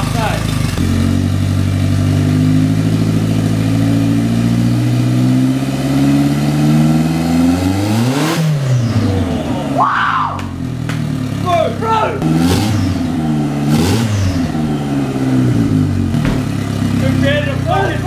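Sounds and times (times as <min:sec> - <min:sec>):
turbocharged engine revving: 0:00.0 - 0:18.0.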